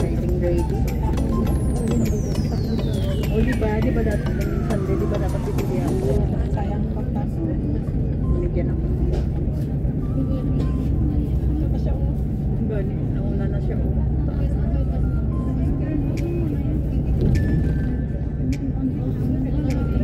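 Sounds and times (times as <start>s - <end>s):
indistinct voices talking: 0.0s - 20.0s.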